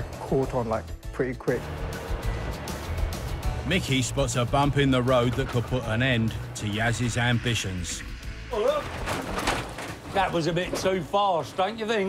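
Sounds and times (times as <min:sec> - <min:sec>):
bus body rattling: 0:03.9 - 0:07.2, 0:08.8 - 0:12.0.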